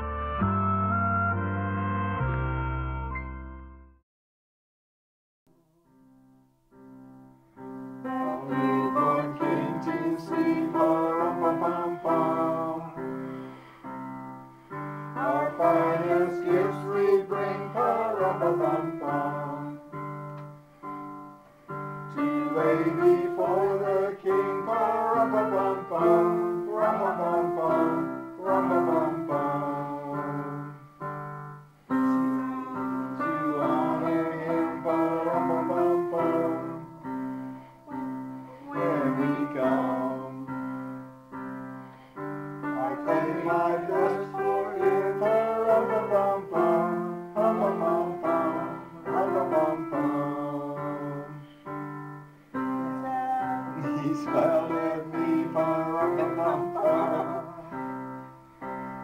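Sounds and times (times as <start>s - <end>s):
piano playing: 0.0s - 4.0s, 5.8s - 59.0s
small group singing: 8.0s - 13.3s, 15.0s - 19.9s, 22.1s - 30.9s, 31.9s - 40.9s, 42.2s - 51.7s, 53.0s - 58.2s.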